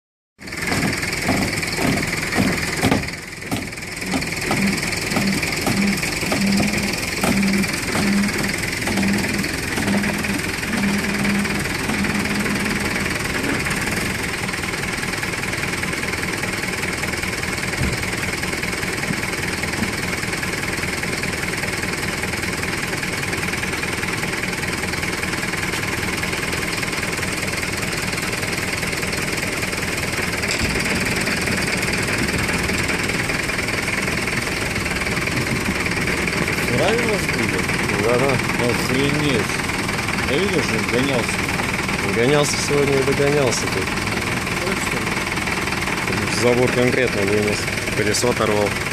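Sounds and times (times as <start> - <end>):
truck engine running: 0.4 - 48.9.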